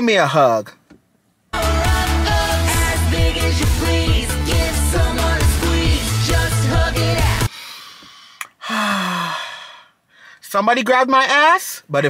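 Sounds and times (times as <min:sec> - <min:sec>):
man sighing: 0:07.5 - 0:10.4.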